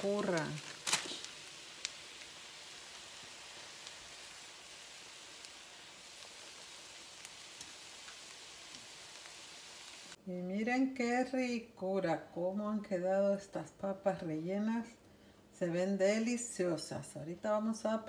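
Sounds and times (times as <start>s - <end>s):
food sizzling in oil: 0.0s - 10.2s.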